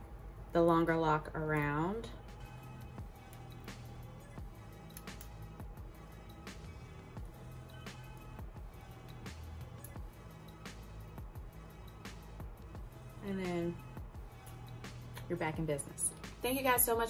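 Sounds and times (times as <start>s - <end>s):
quiet background music: 0.0s - 17.0s
light ticking percussion: 2.3s - 13.0s.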